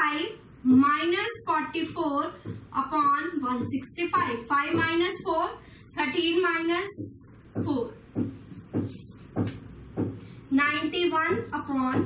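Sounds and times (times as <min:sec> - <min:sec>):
marker writing on whiteboard: 0:00.7 - 0:12.0.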